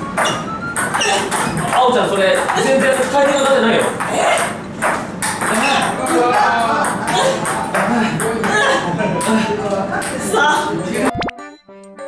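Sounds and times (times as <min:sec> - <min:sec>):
ping-pong ball clicking: 0:00.2 - 0:08.6.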